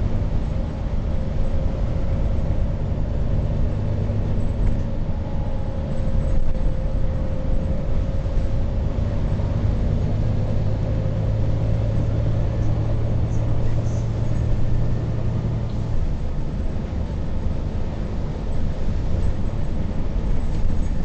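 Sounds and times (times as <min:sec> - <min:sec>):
bus engine and road rumble: 0:00.0 - 0:21.0.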